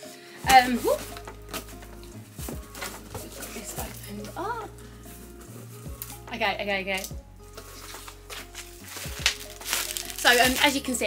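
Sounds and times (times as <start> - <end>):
soft background music: 0.0 - 11.0
plastic packing crackling: 7.0 - 11.0.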